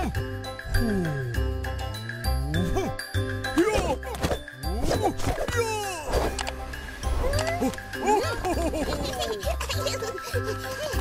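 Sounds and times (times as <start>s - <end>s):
cartoon music with chiming tones: 0.0s - 11.0s.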